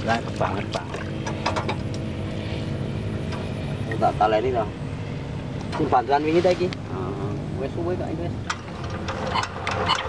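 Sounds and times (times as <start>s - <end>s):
diesel engine running: 0.0s - 10.0s.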